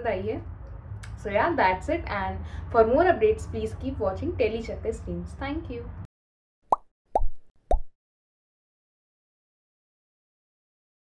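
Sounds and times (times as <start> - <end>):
cartoon pop sound effects: 6.7 - 7.9.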